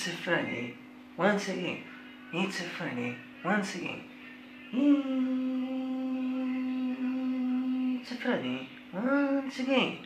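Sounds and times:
man humming a long note: 4.7 - 8.2.

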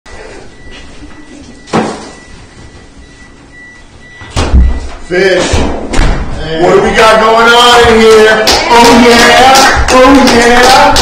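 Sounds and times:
room noise: 0.1 - 11.0.

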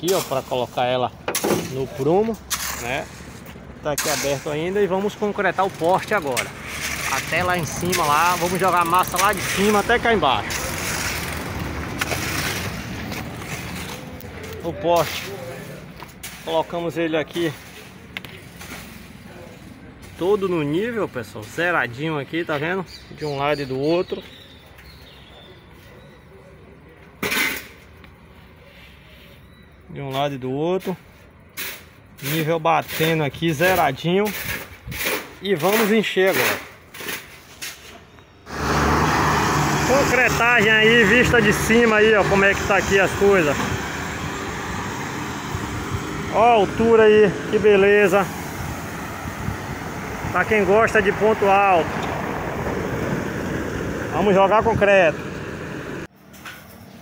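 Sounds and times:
outdoor background noise: 0.0 - 57.0.

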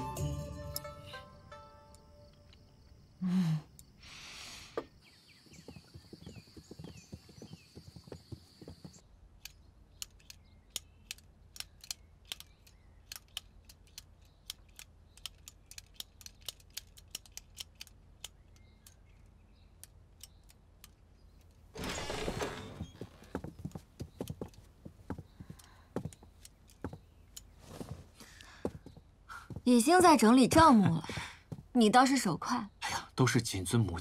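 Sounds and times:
birds chirping: 1.0 - 16.7, 17.4 - 34.0
abacus beads clicking: 9.4 - 21.6.

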